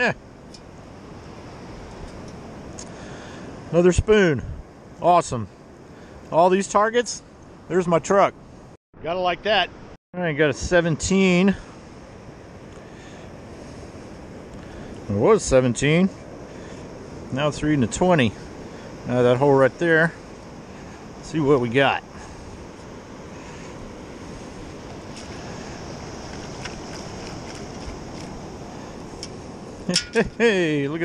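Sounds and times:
wind noise: 0.0 - 8.8, 9.7 - 31.0
surf washing over sand: 10.4 - 31.0.

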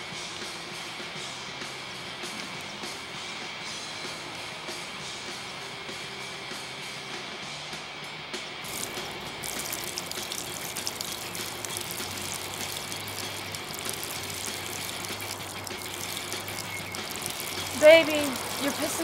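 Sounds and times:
liquid trickling into water: 8.7 - 19.0.

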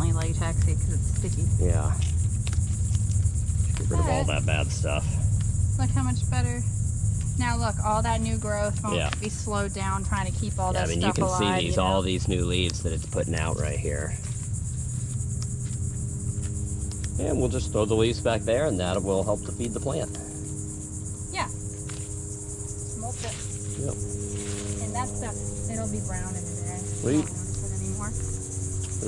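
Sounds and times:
low rumble: 0.0 - 11.1, 11.7 - 29.0
crickets chirring: 0.0 - 29.0
high-pitched insect chorus: 0.0 - 29.0.

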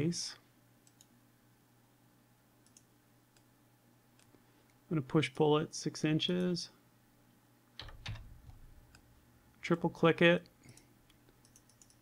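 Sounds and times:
computer mouse clicks: 0.8 - 1.1, 2.6 - 3.5, 10.6 - 12.0.

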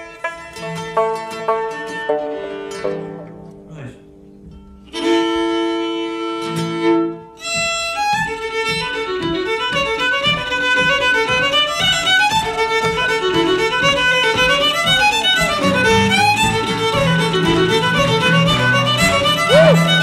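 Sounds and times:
solo fiddle reel: 5.0 - 20.0.

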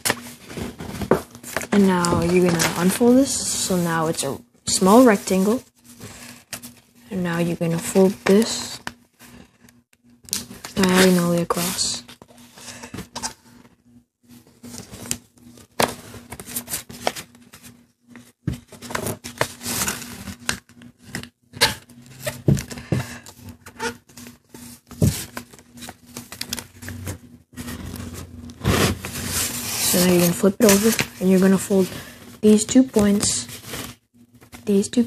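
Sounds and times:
paper folding and crinkling: 0.0 - 3.6, 10.3 - 13.6, 18.6 - 21.3, 22.2 - 34.8.

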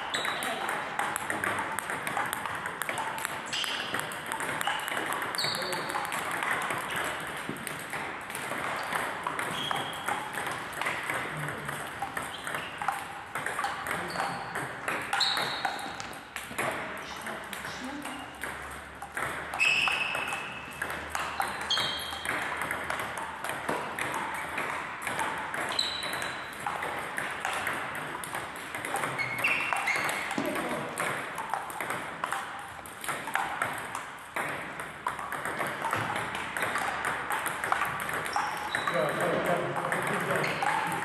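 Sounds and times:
table tennis balls clicking: 0.0 - 41.0.

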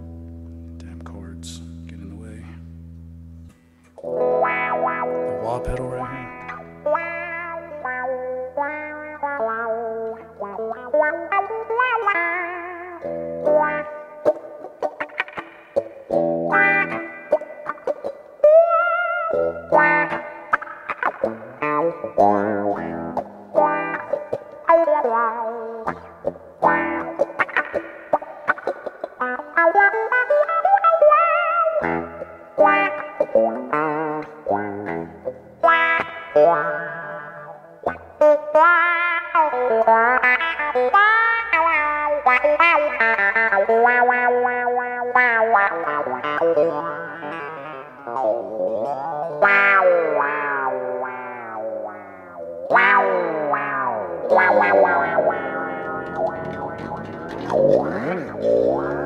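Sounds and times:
electric guitar lead lines: 0.0 - 59.0.

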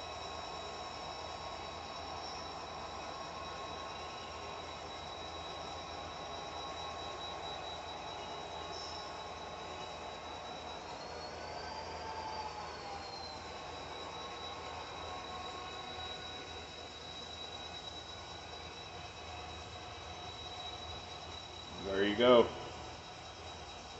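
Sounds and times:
thin high whine: 0.0 - 23.9.

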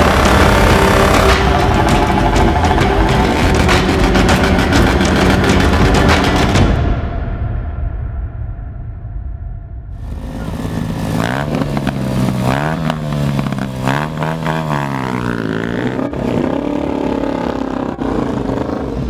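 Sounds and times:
small motorcycle engine revving: 0.0 - 6.6, 10.1 - 19.0.

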